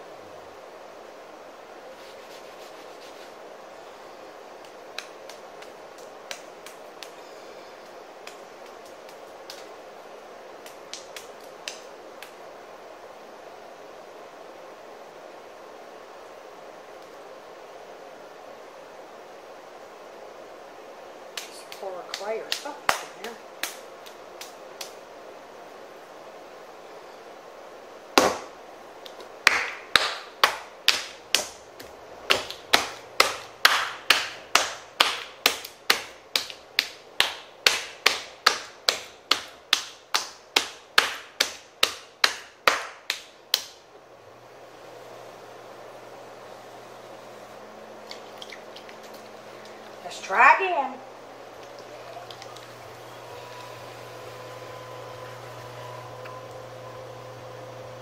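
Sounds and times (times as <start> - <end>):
clay slapped by hand: 21.4 - 25.0, 28.2 - 43.8
potter's wheel motor hum: 51.2 - 58.0.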